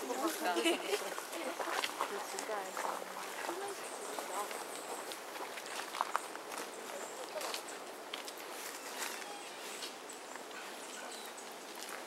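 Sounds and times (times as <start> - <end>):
footsteps on ground: 0.0 - 12.0.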